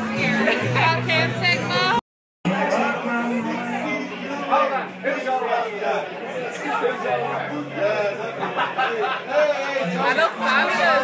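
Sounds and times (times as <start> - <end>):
many voices chattering: 0.0 - 11.0.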